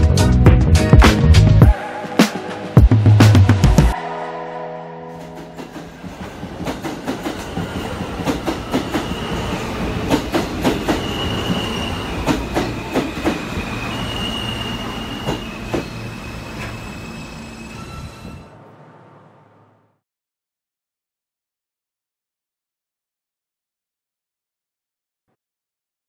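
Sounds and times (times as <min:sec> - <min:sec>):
wheel squealing on rail: 0:06.8 - 0:18.6.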